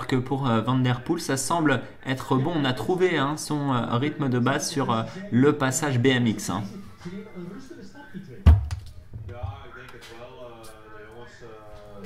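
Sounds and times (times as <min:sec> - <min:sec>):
sharp thump: 0:08.5 - 0:08.9.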